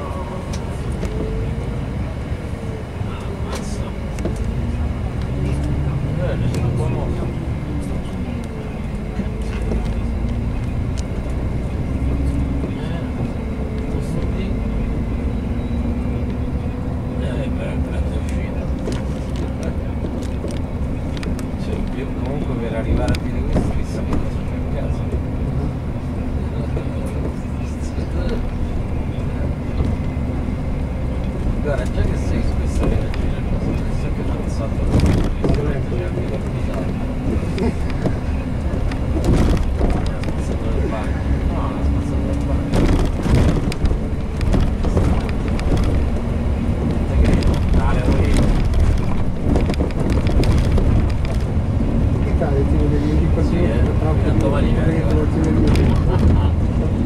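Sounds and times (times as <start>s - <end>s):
bus engine and road rumble: 0.0s - 57.0s.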